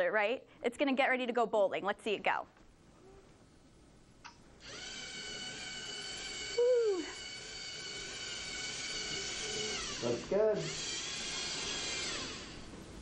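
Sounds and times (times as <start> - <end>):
small electric motors whining: 4.6 - 12.8
voice-like hoo: 6.5 - 7.2.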